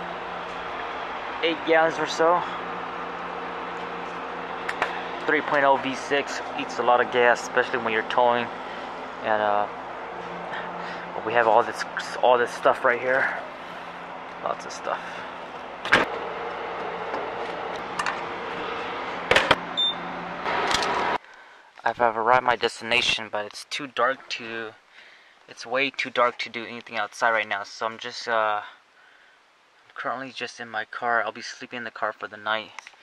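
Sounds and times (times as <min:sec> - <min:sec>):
fuel flow hissing: 0:00.0 - 0:19.3
fuel pump humming: 0:00.0 - 0:21.0
short high beep: 0:19.8 - 0:20.0.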